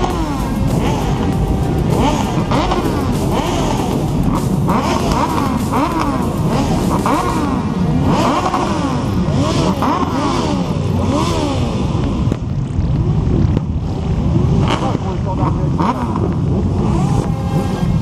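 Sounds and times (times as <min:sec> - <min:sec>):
motorcycle engines revving: 0:00.0 - 0:18.0.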